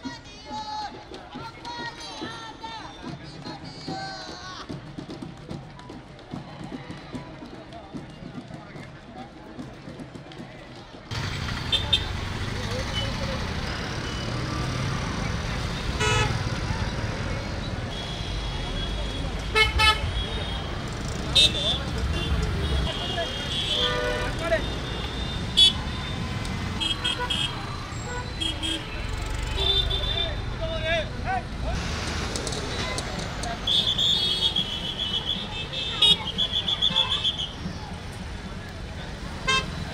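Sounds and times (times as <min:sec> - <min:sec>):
outdoor crowd chatter: 0:00.0 - 0:39.9
truck engines running: 0:11.1 - 0:39.9
vehicle horn toots: 0:16.0 - 0:16.4, 0:21.4 - 0:25.8, 0:26.8 - 0:30.4, 0:33.6 - 0:37.6, 0:39.5 - 0:39.8.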